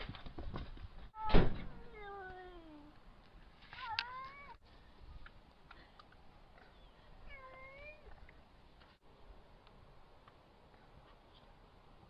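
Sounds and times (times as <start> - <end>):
loud thump: 0.6 - 1.8.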